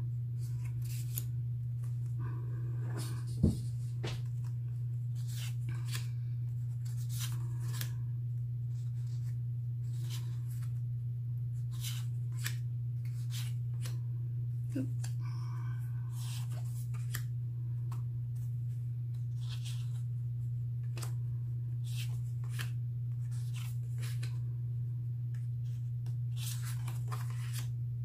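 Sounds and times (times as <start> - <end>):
low hum: 0.0 - 28.0
cards being flipped by hand: 0.4 - 2.1, 2.8 - 8.0, 8.7 - 10.8, 11.5 - 14.0, 16.1 - 20.1, 20.8 - 24.4, 25.3 - 27.7.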